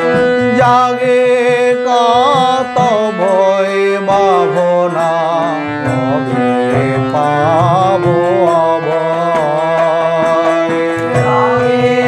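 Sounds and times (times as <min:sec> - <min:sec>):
harmonium held notes: 0:00.0 - 0:12.0
man singing devotional song: 0:00.0 - 0:12.0.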